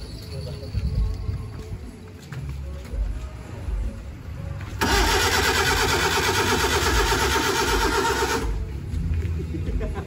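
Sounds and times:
starter motor cranking engine: 4.8s - 8.6s.

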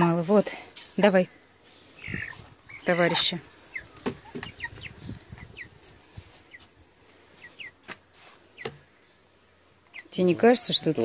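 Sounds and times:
chick peeping: 1.8s - 11.0s.

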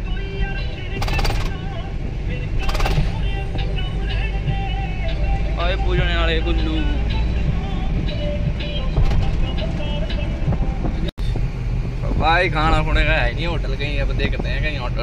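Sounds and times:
music or singing: 0.0s - 11.1s
pickup engine rumble: 0.0s - 15.0s
road noise inside cab: 0.0s - 15.0s.

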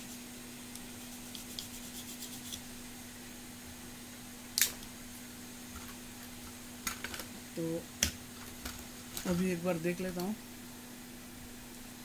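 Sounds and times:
toothbrush scrubbing circuit board: 0.8s - 2.6s.

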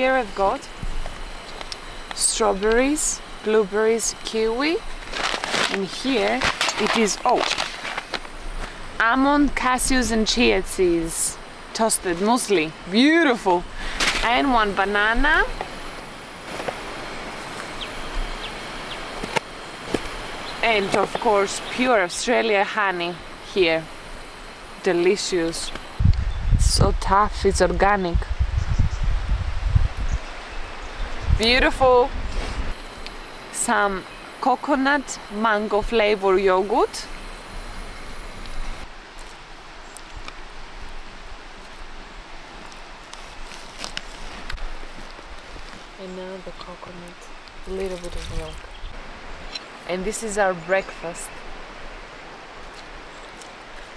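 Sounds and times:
outdoor background hiss: 0.0s - 53.9s.

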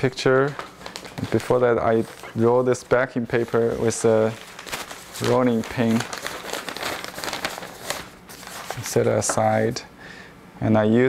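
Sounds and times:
paper rustling and crinkling: 0.0s - 9.7s.

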